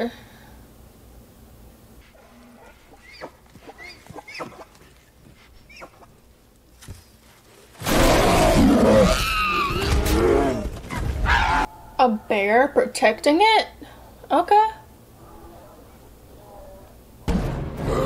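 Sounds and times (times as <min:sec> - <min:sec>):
forest clicks and rustles: 0:02.0 - 0:11.5
bear roaring: 0:02.1 - 0:05.0, 0:07.8 - 0:11.7, 0:17.8 - 0:18.0.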